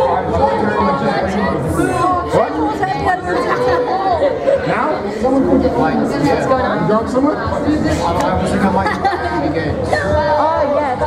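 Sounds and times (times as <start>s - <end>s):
overlapping chatter: 0.0s - 11.0s.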